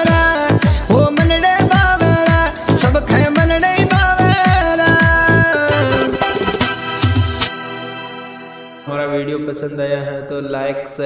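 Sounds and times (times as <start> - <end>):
man chanting: 0.0 - 6.1, 8.8 - 11.0.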